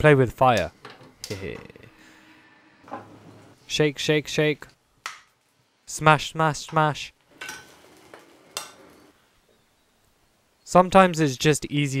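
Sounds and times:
utensils scraping a frying pan: 7.4s - 9.1s.

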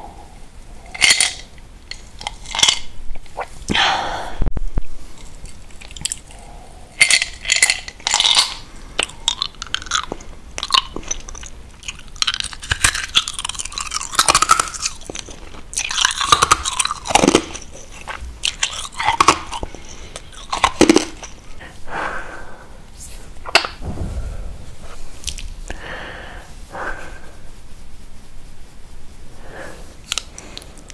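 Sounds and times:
chewing and crunching: 5.2s - 21.6s.

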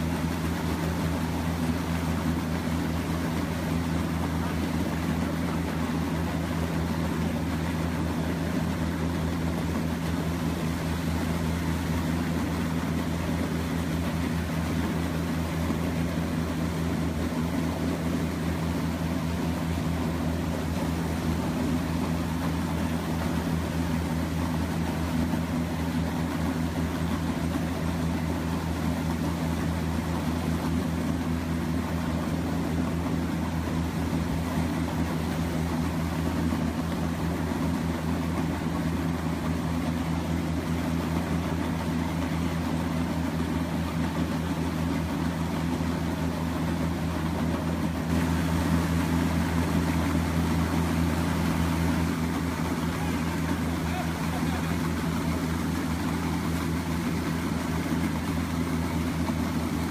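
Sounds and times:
low motor hum: 0.0s - 59.9s.

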